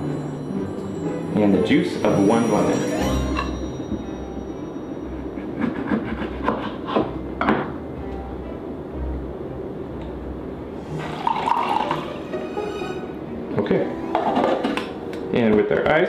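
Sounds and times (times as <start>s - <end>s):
soft music with low beat: 0.0s - 6.0s, 7.0s - 11.0s.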